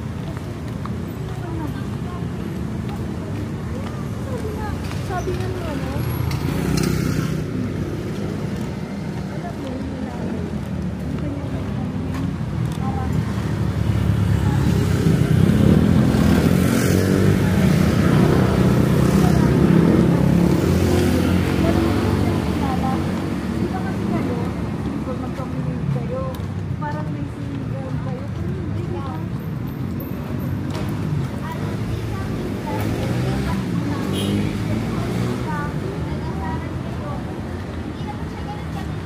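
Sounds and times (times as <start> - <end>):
motorcycles passing: 0.0 - 39.0
traffic noise: 0.0 - 39.0.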